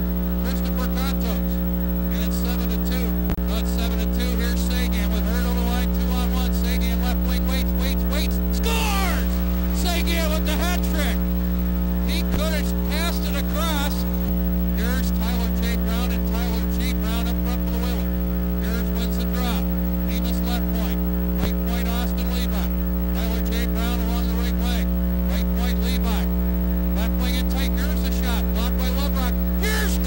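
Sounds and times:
loud electrical mains hum: 0.0 - 30.0
pitched music or voices: 0.4 - 11.3, 27.0 - 30.0.

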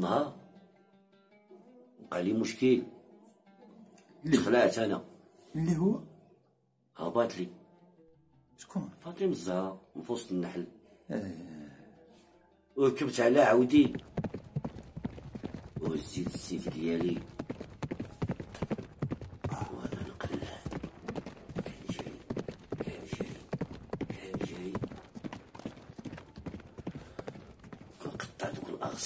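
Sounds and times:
person imitating horse clip-clop: 19.4 - 25.0.

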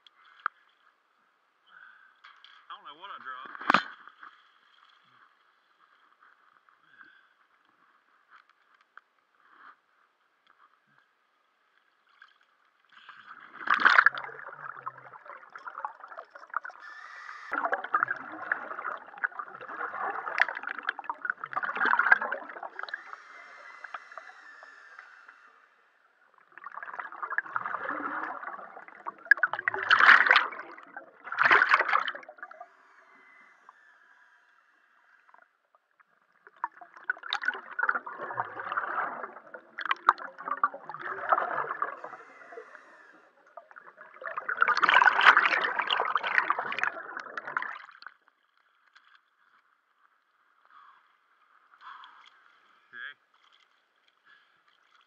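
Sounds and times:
scuba exhaust bubbles gurgling: 13.2 - 48.1
sharp bubble bursts: 13.6 - 25.0, 26.5 - 33.4, 36.5 - 48.0.

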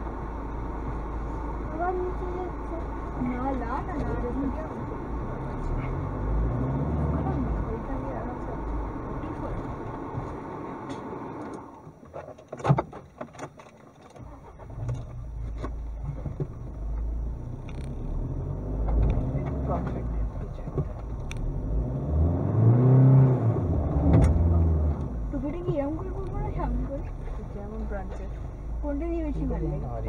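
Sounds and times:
car engine on dirt track: 0.0 - 30.0.

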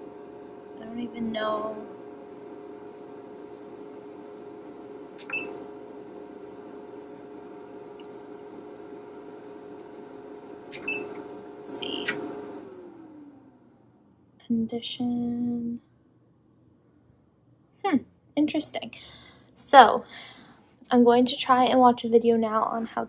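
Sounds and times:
cutting plotter humming: 0.0 - 14.0.

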